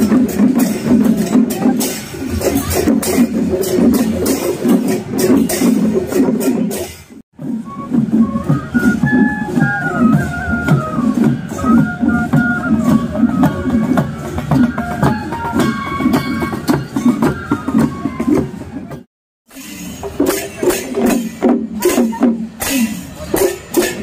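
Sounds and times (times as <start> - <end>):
steady drum beat: 0.0 - 24.0
flutes playing in unison: 7.4 - 19.1.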